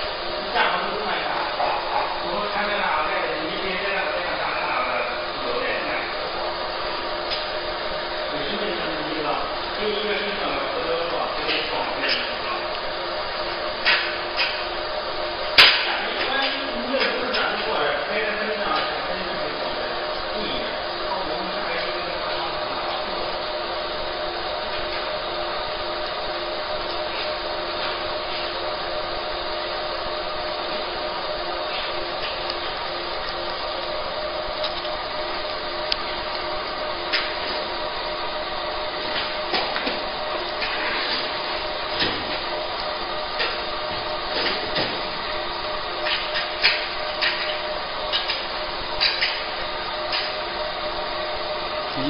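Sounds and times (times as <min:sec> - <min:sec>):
laser machine fan hum: 0:00.0 - 0:52.0.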